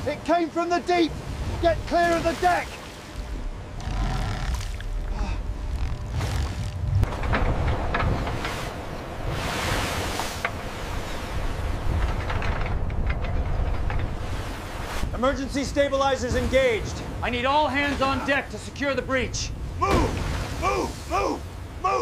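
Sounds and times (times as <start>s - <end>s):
deep steady rumble: 0.0s - 22.0s
rough sea: 0.0s - 22.0s
wind: 0.0s - 22.0s.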